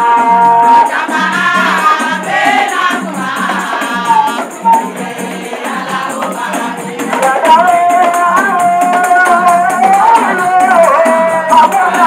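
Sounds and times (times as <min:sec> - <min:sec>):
women singing in chorus: 0:00.0 - 0:12.0
shaker rattling quickly: 0:00.9 - 0:12.0.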